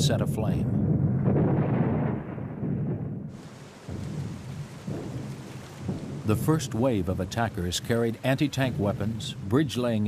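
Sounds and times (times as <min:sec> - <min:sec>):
low rumble of battle noise: 0:00.0 - 0:10.0.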